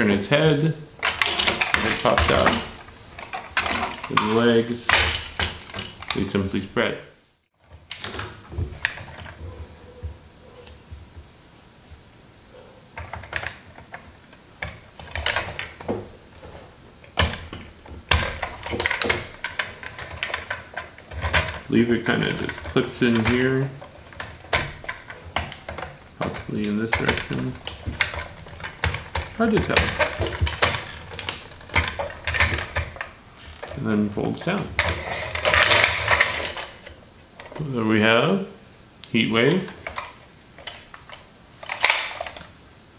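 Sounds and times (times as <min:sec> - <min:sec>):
plastic toy parts clicking: 0:01.0 - 0:06.4, 0:13.0 - 0:16.0, 0:17.0 - 0:33.8, 0:34.7 - 0:37.7, 0:39.5 - 0:42.5.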